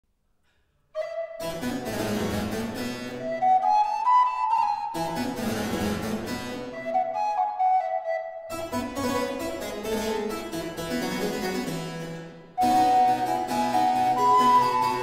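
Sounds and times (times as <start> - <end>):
recorder melody: 12.5 - 15.0.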